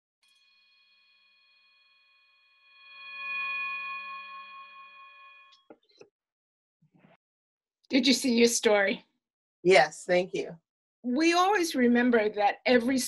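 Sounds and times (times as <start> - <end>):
bell-like ringing tone: 0.2 - 5.7.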